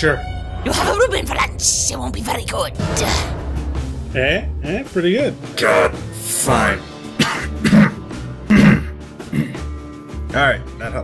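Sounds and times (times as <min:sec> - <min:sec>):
background music: 0:00.0 - 0:11.0
man coughing: 0:07.2 - 0:09.6.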